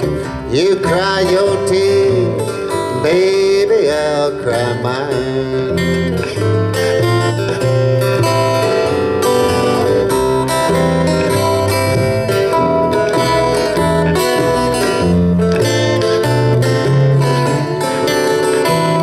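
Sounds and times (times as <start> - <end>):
finger-picked acoustic guitar: 0.0 - 19.0
strummed acoustic guitar: 0.0 - 19.0
upright bass plucking low notes: 0.0 - 19.0.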